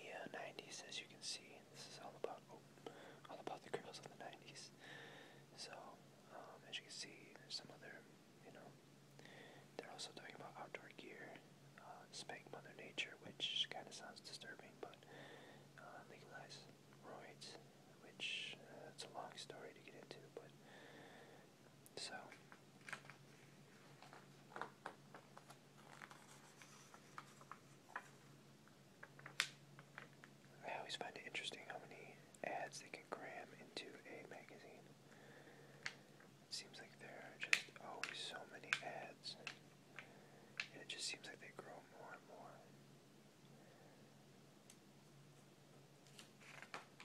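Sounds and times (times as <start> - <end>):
person whispering: 0.0 - 4.8, 5.5 - 8.8, 9.8 - 15.1, 15.8 - 20.5, 21.9 - 22.5, 30.5 - 34.9, 36.5 - 39.6, 40.6 - 42.7.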